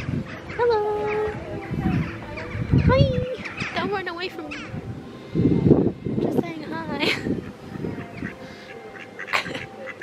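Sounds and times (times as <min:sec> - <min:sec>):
ducks quacking: 0:00.0 - 0:04.8, 0:07.0 - 0:10.0.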